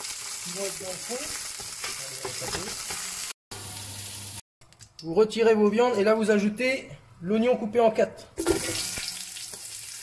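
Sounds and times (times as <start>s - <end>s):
meat sizzling in hot oil: 0.0s - 4.4s, 8.4s - 10.0s.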